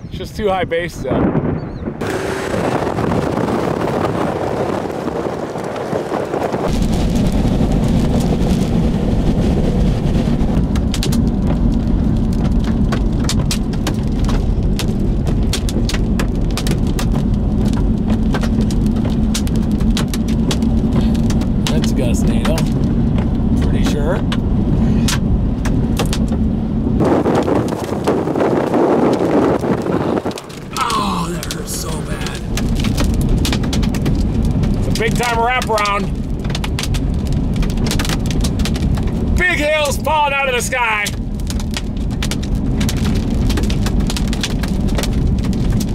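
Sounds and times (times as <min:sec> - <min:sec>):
vehicle wind and road noise: 0:00.0 - 0:45.9
hailstones striking vehicle: 0:02.1 - 0:45.9.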